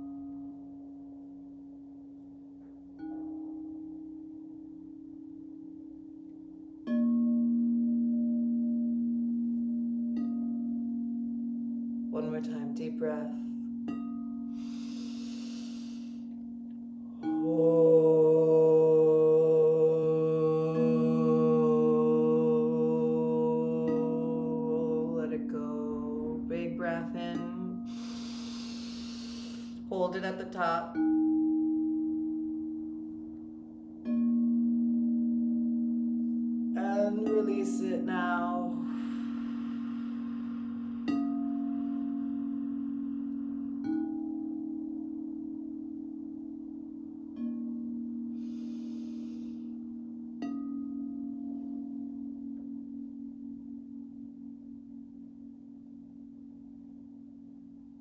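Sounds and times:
crystal singing bowls ringing: 0.0s - 58.0s
person breathing: 14.5s - 16.3s, 27.8s - 29.9s, 38.8s - 43.8s, 48.4s - 49.9s.

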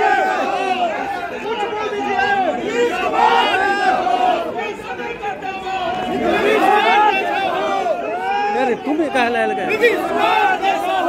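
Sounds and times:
crowd shouting and talking: 0.0s - 11.0s.

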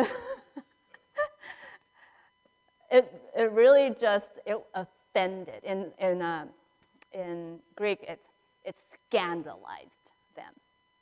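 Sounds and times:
laugh-like gasp: 1.2s - 1.8s
woman speaking: 2.9s - 6.5s, 7.2s - 10.5s.

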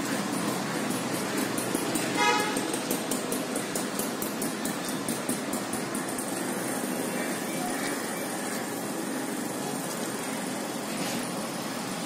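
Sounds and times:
street traffic: 0.0s - 12.0s
vehicle horn toot: 2.2s - 2.7s.

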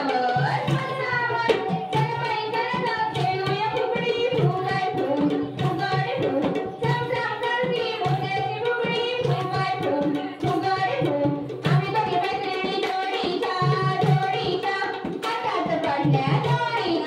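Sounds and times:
hand drum beat: 0.0s - 17.0s
women singing folk song: 0.0s - 17.0s.

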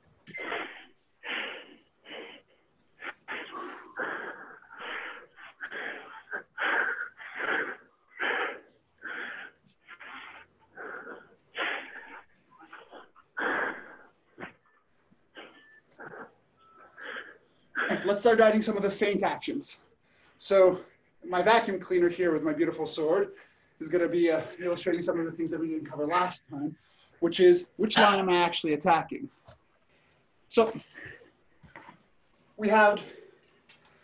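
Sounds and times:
man breathing hard: 1.2s - 14.2s.

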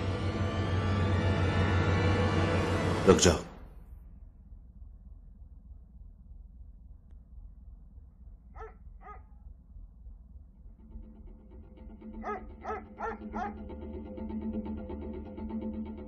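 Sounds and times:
music playing: 0.0s - 3.6s, 10.8s - 16.0s
dog barking: 8.5s - 9.4s, 12.2s - 13.6s.

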